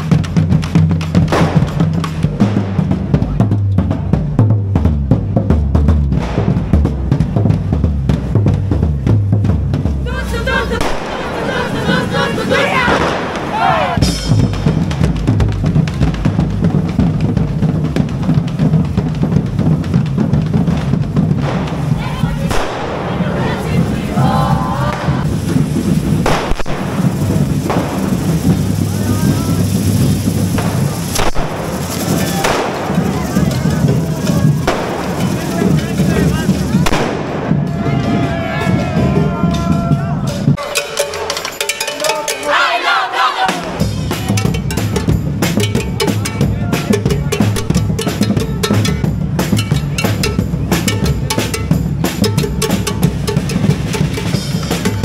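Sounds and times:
bass drums: 0.0 - 55.0
snare drums: 0.0 - 55.0
spark fireworks hissing and crackling: 20.5 - 37.6.

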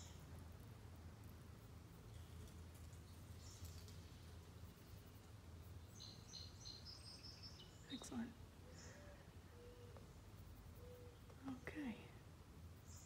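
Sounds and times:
steady low hum: 0.0 - 13.0
birds chirping: 2.1 - 12.2.

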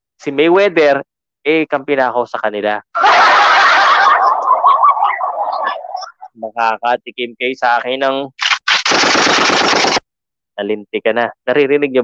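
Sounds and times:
automatic machine-gun fire: 8.4 - 10.0.

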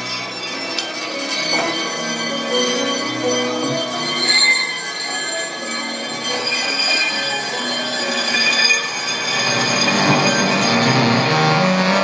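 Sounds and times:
high squealing ringing tones: 0.0 - 11.6.

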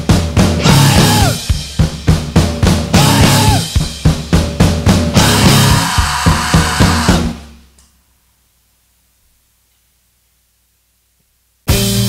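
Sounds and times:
rock band playing: 0.0 - 7.6, 11.7 - 12.0
drum kit accented beats: 0.0 - 7.8, 11.7 - 12.0.

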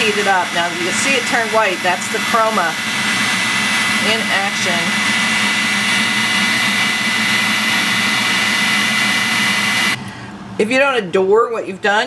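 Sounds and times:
heat gun blowing air with whine: 0.0 - 10.0.

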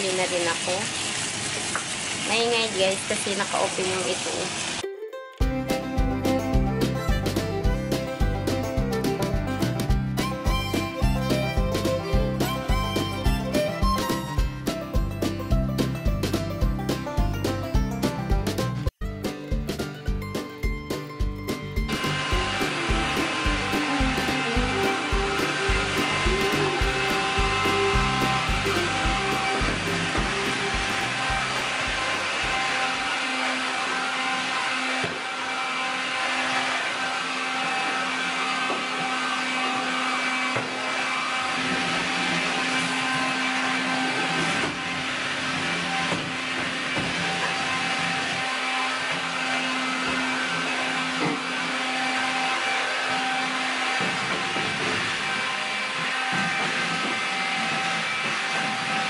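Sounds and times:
vacuum cleaner running: 0.0 - 4.8, 5.7 - 14.7, 21.8 - 59.0.

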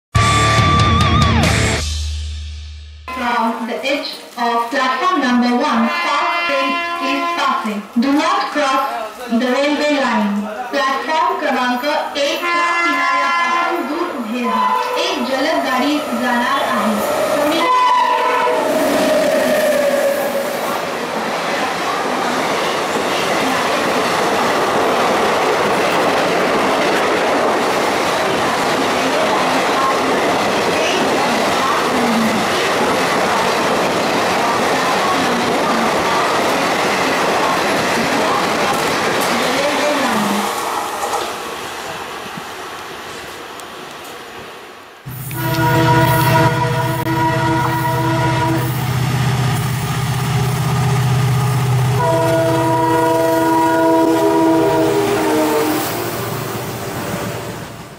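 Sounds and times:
train coaches rushing past: 5.6 - 57.9
train horn: 5.7 - 7.7, 12.3 - 15.8, 17.4 - 20.5, 45.1 - 48.9, 51.4 - 56.9.

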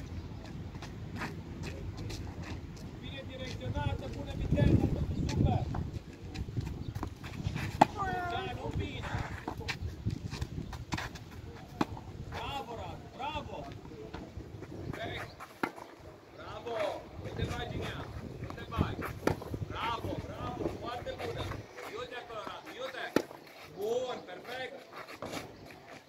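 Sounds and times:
voices calling: 2.8 - 10.0, 11.1 - 26.0.

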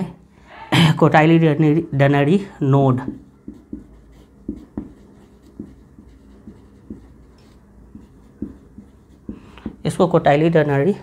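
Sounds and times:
pen writing taps and scrapes: 3.0 - 9.8.

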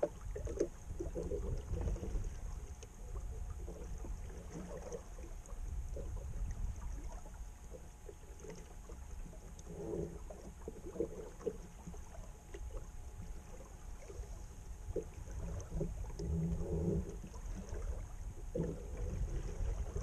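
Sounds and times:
wind rumble on microphone: 0.0 - 7.6, 14.1 - 20.0
water slapping against a hull: 0.0 - 20.0
water splashes: 0.0 - 20.0.

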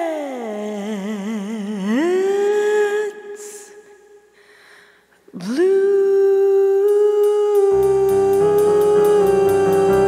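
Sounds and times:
woman humming a long note: 6.0 - 10.0.

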